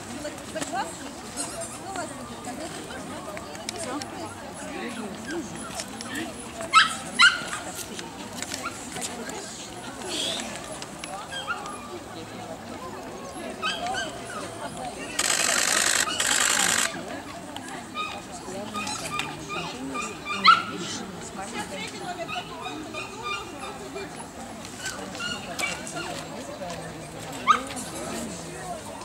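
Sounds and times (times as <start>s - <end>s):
murmur of voices: 0.0s - 29.0s
dog yipping: 6.7s - 7.6s, 13.6s - 14.5s.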